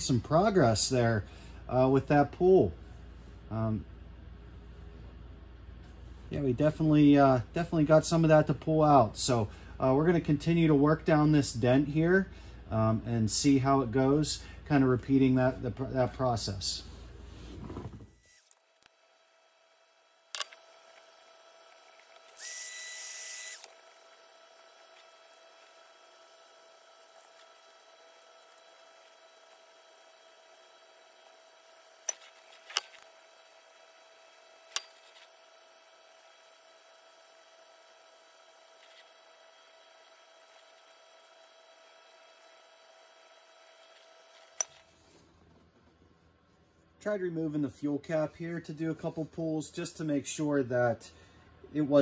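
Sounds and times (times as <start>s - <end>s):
heat gun fan whine: 0.0s - 52.0s.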